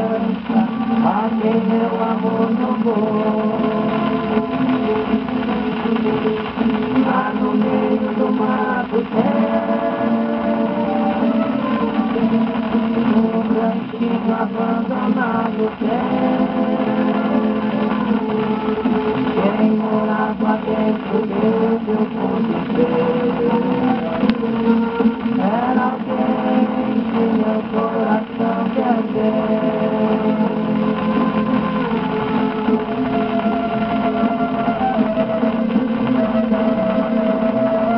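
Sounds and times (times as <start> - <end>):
person singing: 0.0 - 5.7, 6.9 - 37.9
record surface noise: 0.0 - 37.9.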